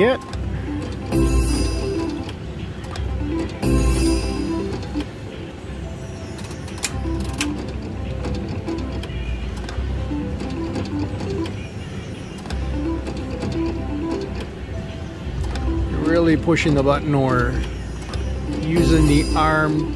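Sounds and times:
slot machine reels whirring: 0.0 - 9.0, 10.0 - 11.7, 12.4 - 14.9, 15.5 - 19.9.

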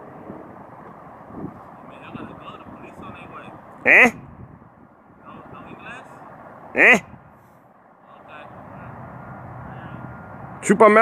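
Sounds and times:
low background noise: 0.0 - 11.0
man calling out: 1.8 - 4.3, 5.2 - 6.2, 6.8 - 7.2, 8.1 - 9.0.

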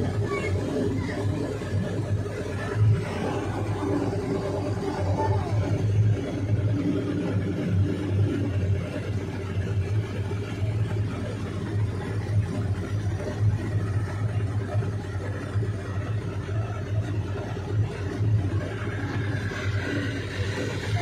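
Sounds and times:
boat engine humming: 0.0 - 21.0.

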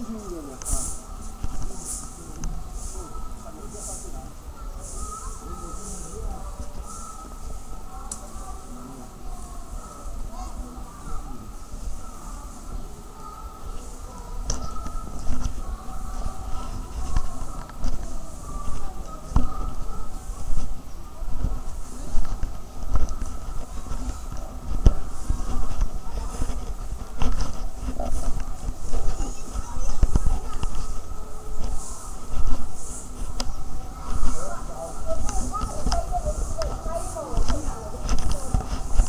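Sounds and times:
faint distant voices: 0.0 - 39.0.

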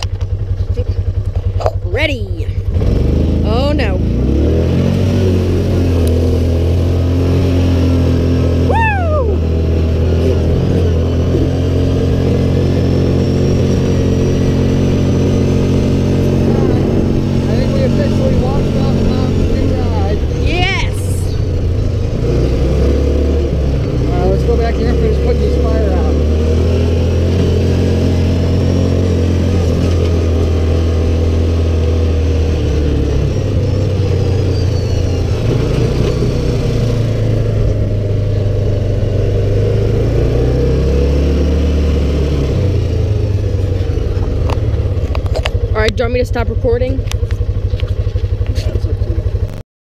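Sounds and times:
utility vehicle engine running: 0.0 - 49.6.

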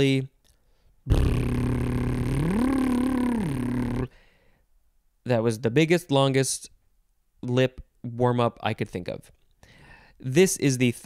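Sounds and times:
man's voiced lip trill: 1.1 - 4.2.

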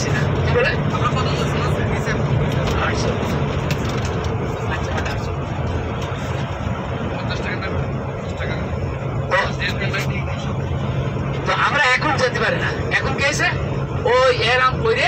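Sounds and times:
people talking: 0.0 - 3.4, 4.6 - 5.4, 7.1 - 10.6, 11.4 - 15.0
vehicle engine and tyres drone: 0.0 - 15.0.

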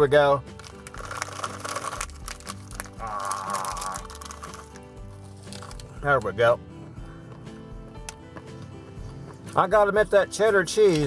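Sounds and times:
background music: 0.0 - 11.0
snack packet crinkling: 0.5 - 6.0
peanuts crunching: 0.5 - 6.3.

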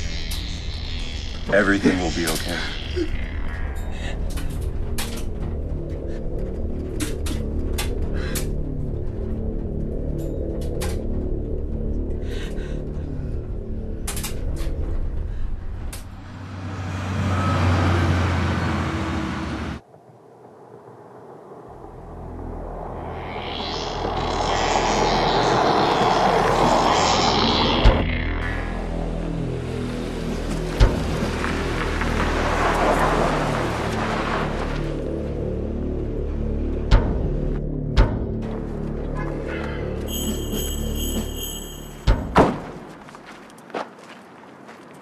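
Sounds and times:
low droning music: 0.0 - 19.9, 21.2 - 42.9
van engine and tyre noise: 13.4 - 45.0.

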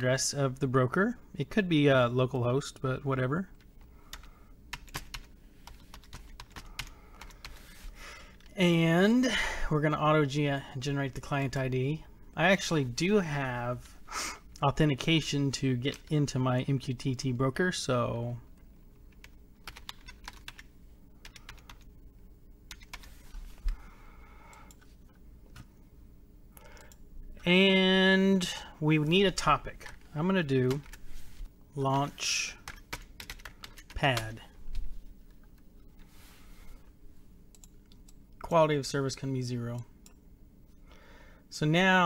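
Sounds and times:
computer keyboard typing: 4.1 - 7.7, 19.1 - 21.9, 22.7 - 23.3, 32.6 - 34.3.

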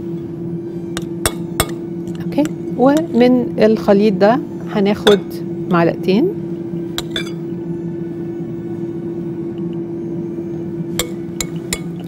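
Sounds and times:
spoon clinking on glass bowl: 7.0 - 7.4, 11.0 - 12.0.

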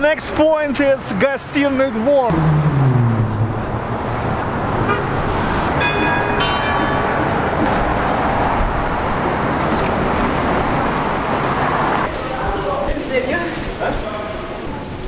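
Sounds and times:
passing cars and buses: 0.0 - 15.0
vehicle horn honking: 4.8 - 7.0.

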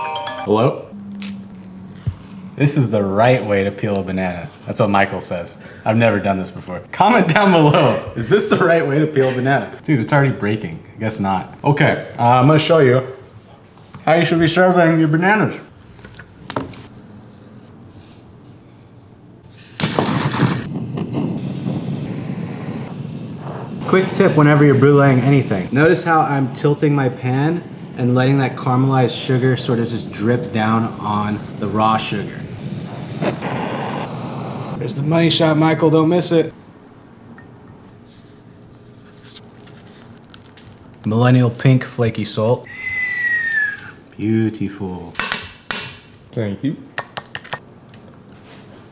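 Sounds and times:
butane torch flame hissing: 19.2 - 36.6
sugar crackling: 19.6 - 36.3.

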